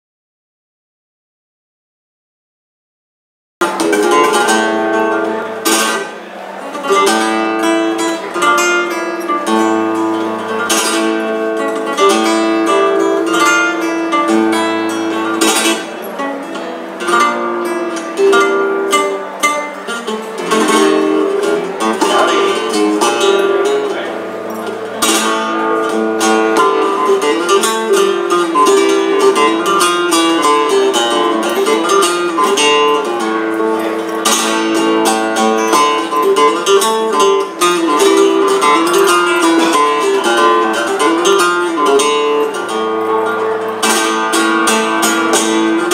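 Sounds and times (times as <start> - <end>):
flamenco guitar playing: 3.6 - 45.9.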